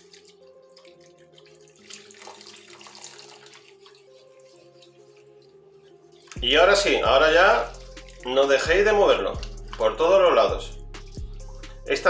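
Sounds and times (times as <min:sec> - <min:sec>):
milk pouring into sauce: 0:00.0 - 0:10.2
whisk stirring sauce: 0:03.5 - 0:10.2.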